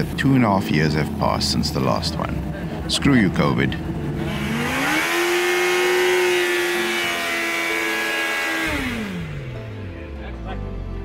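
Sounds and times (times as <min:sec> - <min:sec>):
motorcycle engine revving hard: 0:04.0 - 0:10.0.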